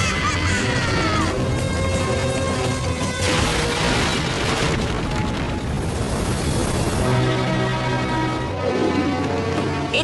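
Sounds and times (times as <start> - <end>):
dramatic background score: 0.0 - 10.0.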